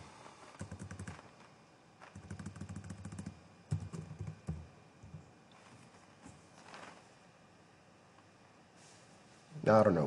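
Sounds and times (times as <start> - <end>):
computer keyboard typing: 0.6 - 1.3, 2.0 - 5.2.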